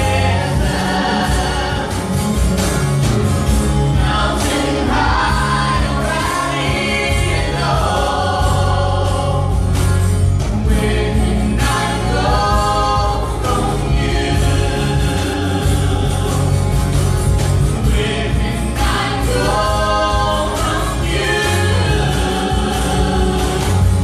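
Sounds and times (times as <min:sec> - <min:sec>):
voices singing together: 0:00.0 - 0:24.0
worship band playing: 0:00.0 - 0:24.0.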